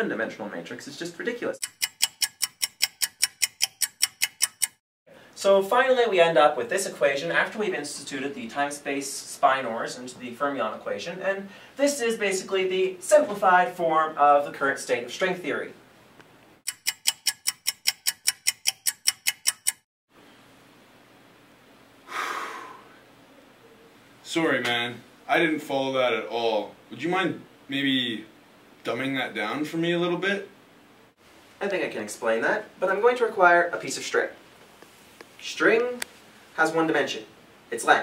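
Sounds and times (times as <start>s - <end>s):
rapid sharp ticking: 1.6s - 4.8s, 16.7s - 19.8s.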